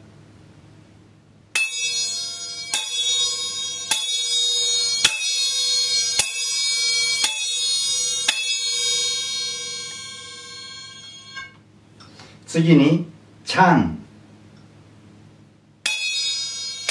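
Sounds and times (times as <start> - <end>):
small hand cymbals ringing: 1.6 - 11.6, 15.8 - 16.9.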